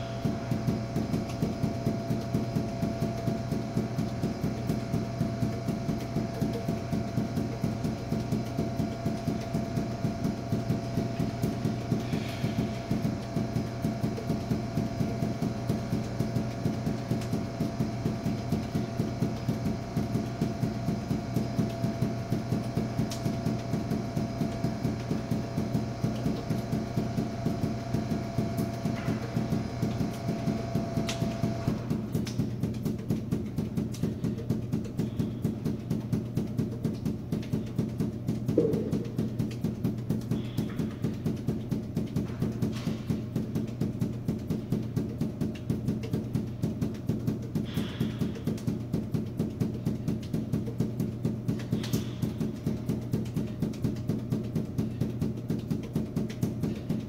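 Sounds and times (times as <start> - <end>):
steady hum: 0.0 - 57.0
balls bouncing off hard floor: 26.1 - 57.0.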